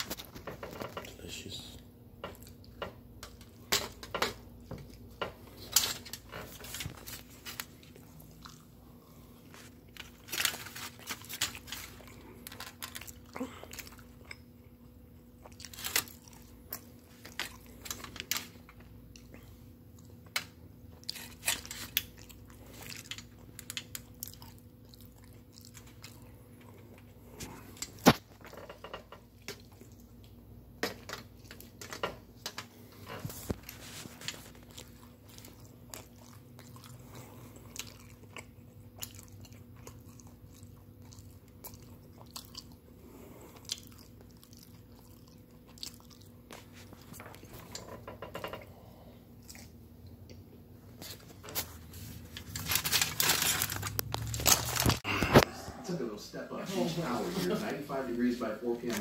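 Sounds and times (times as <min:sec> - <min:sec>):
faint steady hum: 0:00.0 - 0:59.0
person biting and chewing food: 0:04.4 - 0:28.5, 0:32.8 - 0:47.9, 0:48.8 - 0:55.6.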